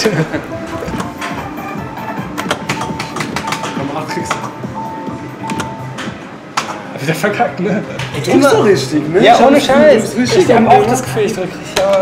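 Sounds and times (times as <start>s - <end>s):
arcade music: 0.1s - 6.5s
slot machine clicks: 2.4s - 4.6s.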